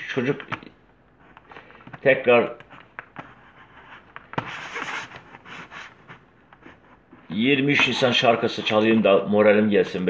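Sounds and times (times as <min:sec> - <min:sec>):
scraping and rustling handling noise: 0:00.0 - 0:10.0.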